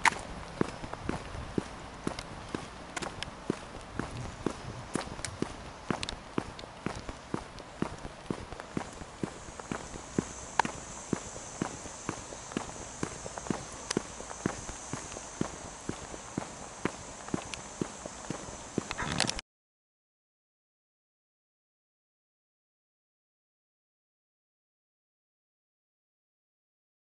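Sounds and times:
footsteps on asphalt: 0.0s - 19.4s.

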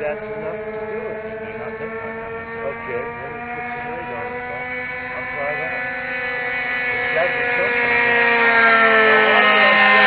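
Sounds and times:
model airplane engine running: 0.0s - 10.0s.

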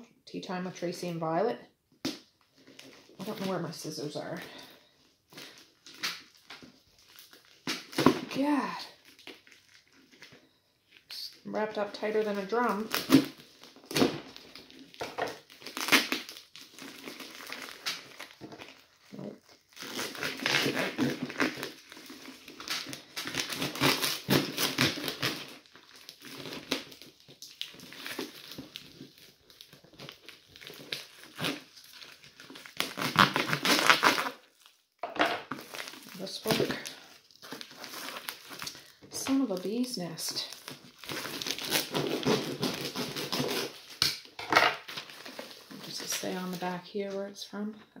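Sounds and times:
wrapping crinkling and tearing: 2.1s - 47.4s.

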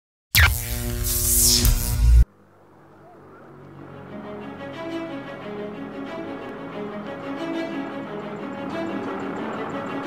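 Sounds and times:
soft music: 3.4s - 10.0s.

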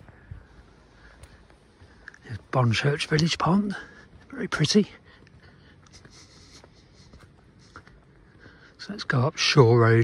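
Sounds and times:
footsteps on pavement: 0.0s - 10.0s
outdoor background noise: 0.0s - 10.0s.

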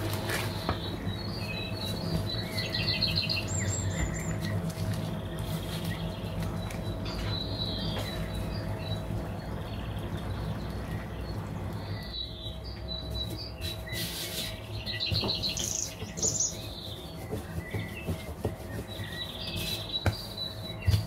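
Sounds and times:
low steady hum: 0.0s - 21.0s
small birds chirping: 0.0s - 21.0s.

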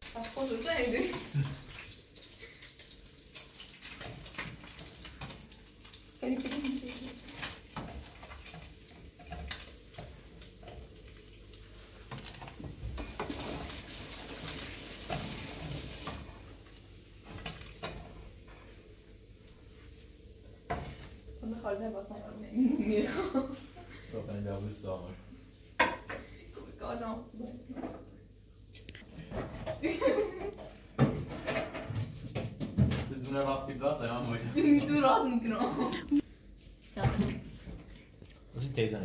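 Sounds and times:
steady frying hiss: 0.0s - 39.0s.

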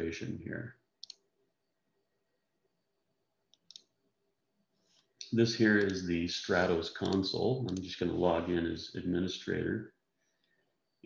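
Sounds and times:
computer mouse clicks: 1.0s - 1.3s, 3.5s - 4.0s, 5.0s - 6.0s, 7.0s - 7.9s.

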